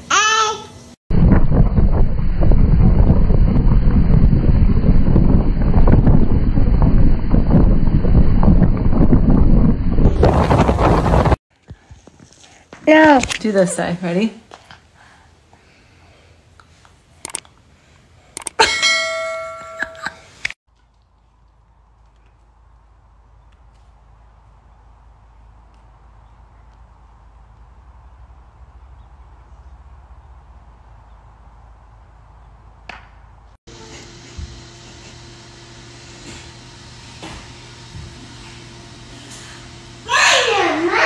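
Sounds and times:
outdoor background noise: 0.0 - 41.0
small clicks: 17.2 - 17.5, 18.4 - 18.6
ringing metallic strike: 18.6 - 20.2
steady mechanical hum: 33.7 - 41.0.

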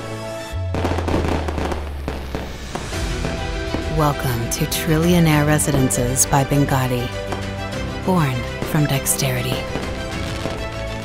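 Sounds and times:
background music: 0.0 - 11.0
firework boom: 0.7 - 4.1
firework crackling: 0.7 - 5.5, 7.1 - 11.0.

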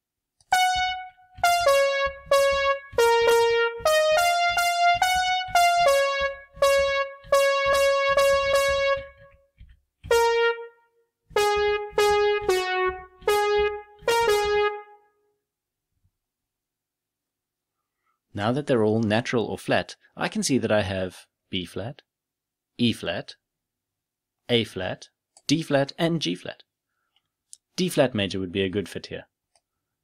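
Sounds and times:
piano melody notes: 0.5 - 9.4, 10.1 - 15.0.

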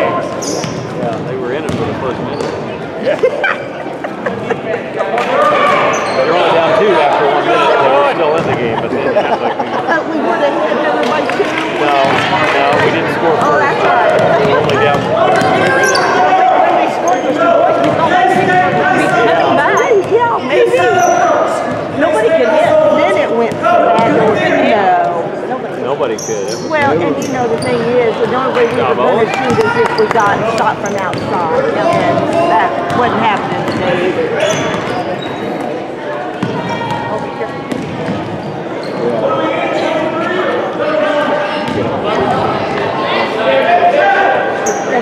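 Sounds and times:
voices echoing in hall: 0.0 - 45.0
basketball bouncing on wooden floor: 0.6 - 1.8, 29.5 - 33.9, 37.7 - 38.3.

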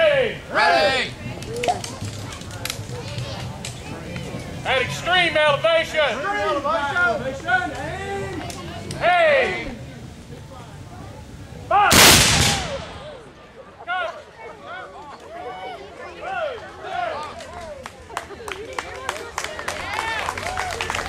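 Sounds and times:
voices: 0.0 - 21.0
musket volley: 11.7 - 13.4
scattered applause: 14.9 - 21.0.

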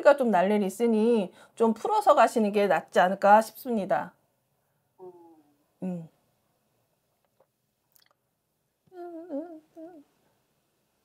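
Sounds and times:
woman humming a tune: 5.0 - 6.1, 8.9 - 10.1.

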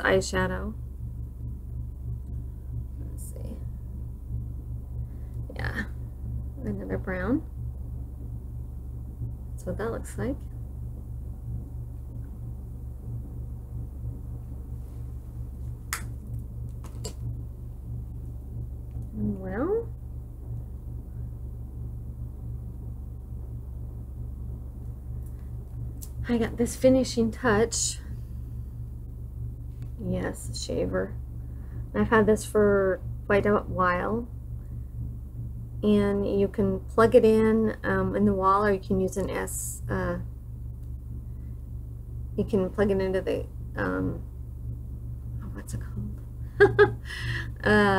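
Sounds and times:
low electrical hum: 0.0 - 47.9.

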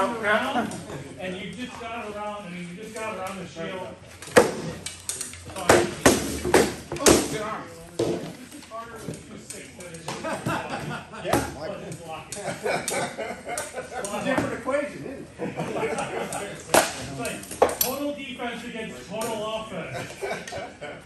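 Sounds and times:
voices talking: 0.0 - 21.0
practice swords striking shields: 5.5 - 8.3.

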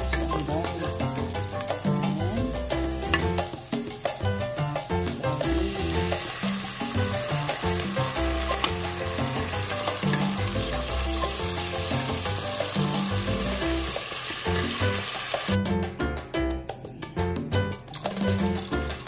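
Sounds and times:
onions sizzling in oil: 0.0 - 15.6
sauce pouring: 0.0 - 15.6, 17.9 - 19.0
background music with bass: 0.0 - 19.0
wooden spatula stirring: 0.1 - 14.8.

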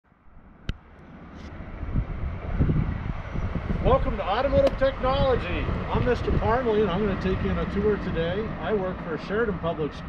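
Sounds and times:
low outdoor rumble: 0.1 - 10.0.

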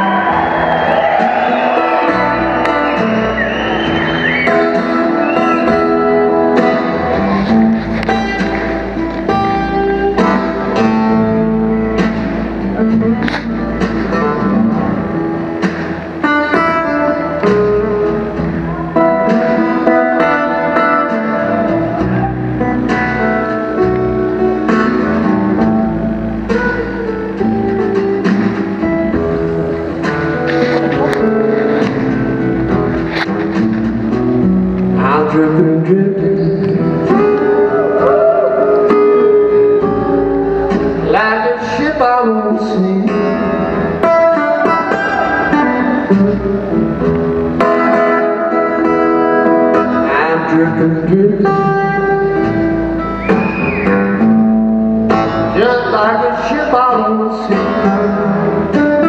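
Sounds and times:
acoustic guitar blues: 0.0 - 59.0
band backing: 0.0 - 59.0
man singing: 34.9 - 37.4, 41.0 - 43.7, 49.8 - 52.4, 55.4 - 59.0.

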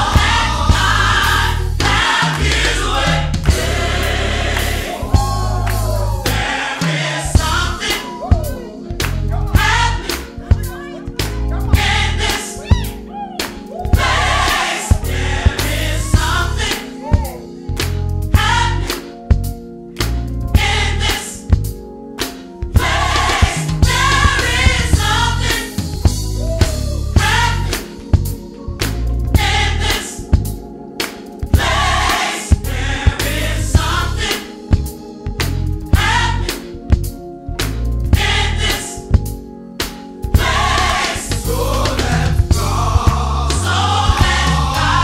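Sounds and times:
sharp beats: 0.0 - 19.0, 39.8 - 45.0
band playing: 0.0 - 19.5, 22.8 - 28.3, 40.2 - 45.0
gospel choir singing: 0.0 - 45.0
instrumental accompaniment with bass: 0.0 - 45.0.

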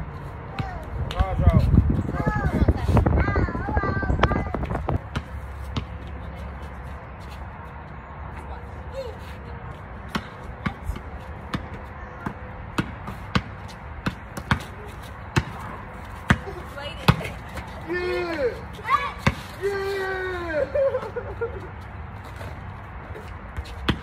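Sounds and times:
basketball bouncing on concrete: 0.5 - 1.6, 4.3 - 6.7, 10.0 - 17.8, 19.2 - 19.6, 23.5 - 24.0
voices calling out: 14.5 - 22.4.

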